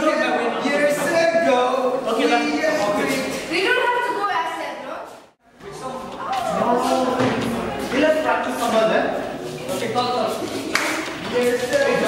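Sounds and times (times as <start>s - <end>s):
voices in a room: 0.0s - 12.0s.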